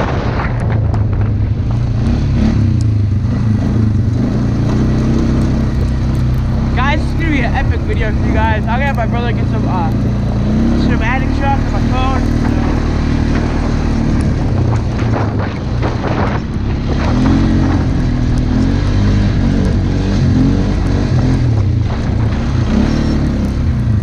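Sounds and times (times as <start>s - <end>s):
atv engine running: 0.0s - 24.0s.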